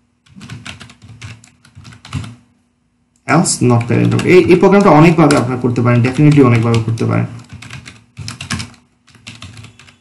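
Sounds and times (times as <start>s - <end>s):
keyboard typing clicks: 3.7s - 10.0s.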